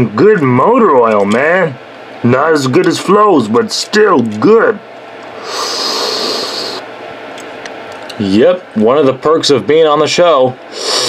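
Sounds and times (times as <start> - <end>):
mouth slurping sip: 5.4 - 6.8, 10.7 - 11.0.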